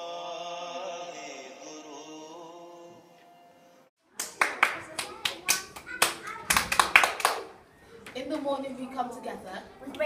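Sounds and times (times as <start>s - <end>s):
rhythmic hand claps: 4.1s - 7.5s
children's voices: 4.2s - 10.0s.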